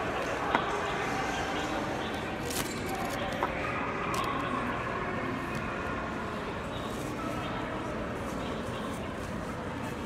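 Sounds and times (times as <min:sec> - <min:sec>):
shopping mall background hum: 0:00.0 - 0:10.0.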